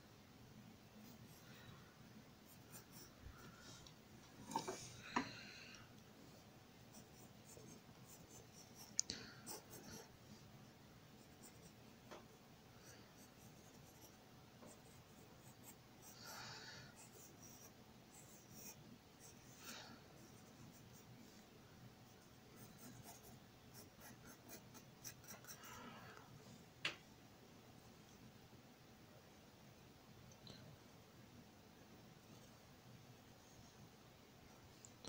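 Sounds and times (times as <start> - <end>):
pencil scratching on paper: 2.5 - 3.2, 6.9 - 10.5, 11.2 - 11.8, 12.8 - 19.6, 20.2 - 21.1, 22.1 - 25.7.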